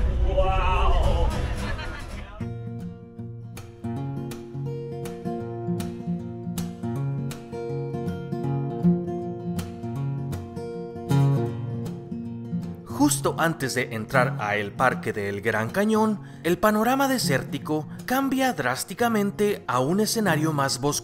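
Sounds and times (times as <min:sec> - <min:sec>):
acoustic guitar strumming: 0:01.0 - 0:21.0.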